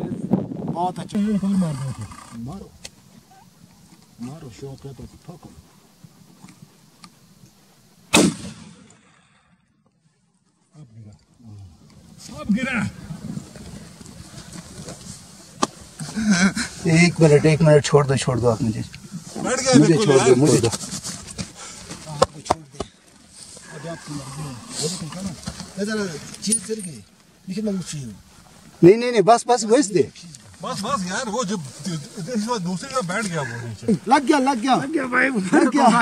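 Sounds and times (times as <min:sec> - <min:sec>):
men talking in low voices: 0:00.0 - 0:02.9, 0:04.2 - 0:05.7, 0:10.7 - 0:14.5, 0:16.0 - 0:20.9, 0:21.6 - 0:23.0, 0:23.6 - 0:28.2, 0:28.8 - 0:36.0
rifle shot: 0:08.1 - 0:09.4.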